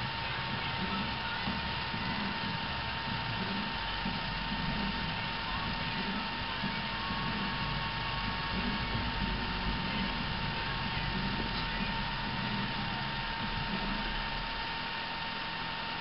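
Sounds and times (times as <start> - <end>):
low hum and hiss: 0.0 - 16.0
thin high whine: 0.0 - 16.0.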